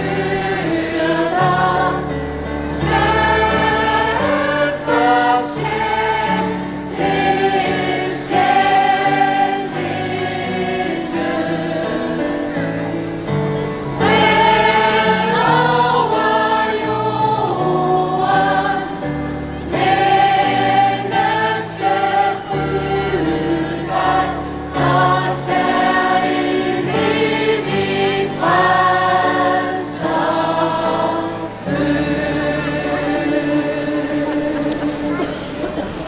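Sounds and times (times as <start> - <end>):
gospel choir singing a hymn: 0.0 - 36.0
keyboard accompaniment: 0.0 - 36.0.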